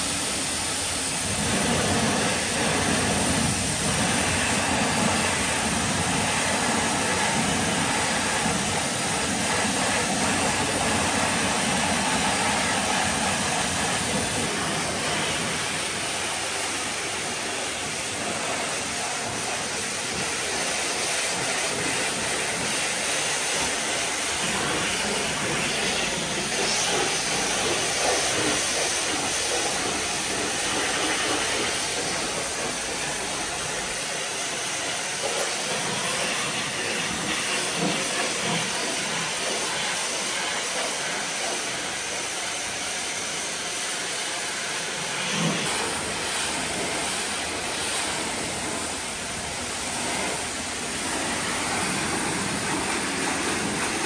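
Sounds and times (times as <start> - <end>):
pressure washer spraying water: 0.0 - 54.0.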